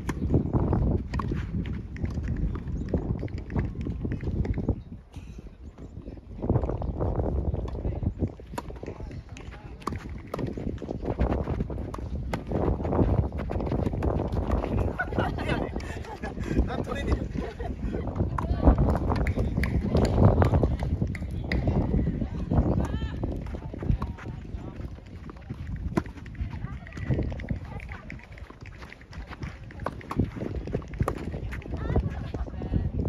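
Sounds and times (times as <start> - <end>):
wind rumble on microphone: 0.0 - 33.0.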